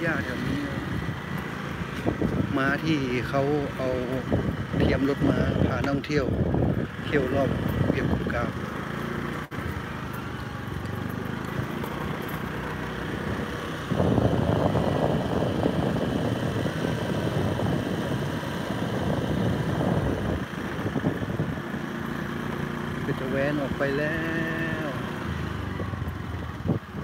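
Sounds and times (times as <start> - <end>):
small motorcycle engine running: 0.0 - 27.0.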